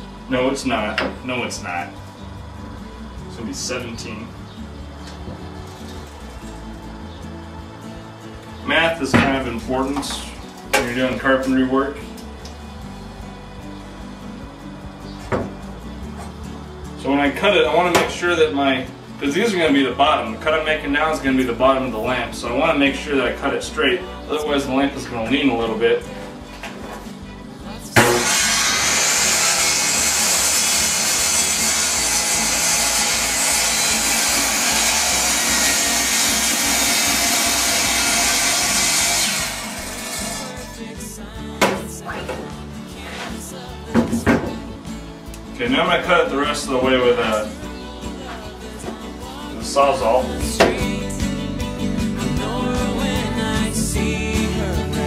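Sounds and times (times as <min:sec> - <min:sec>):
soft low background music: 0:00.0 - 0:55.0
chop saw cutting wood: 0:28.0 - 0:40.8.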